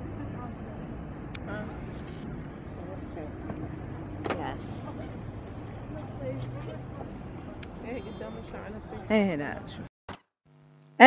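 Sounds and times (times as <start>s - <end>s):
faint indistinct voices: 0.0s - 9.9s
traffic rumble: 0.0s - 9.9s.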